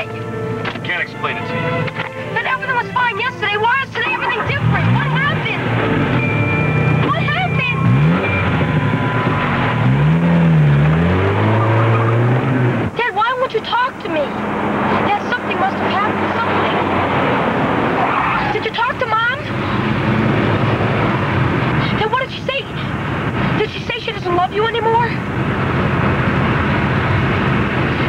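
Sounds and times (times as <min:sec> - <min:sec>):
car engine and road noise: 0:00.0 - 0:28.0
people talking: 0:02.3 - 0:05.7, 0:07.0 - 0:07.9, 0:13.0 - 0:14.4, 0:15.0 - 0:16.9, 0:18.5 - 0:19.5, 0:21.8 - 0:22.9, 0:23.6 - 0:25.2.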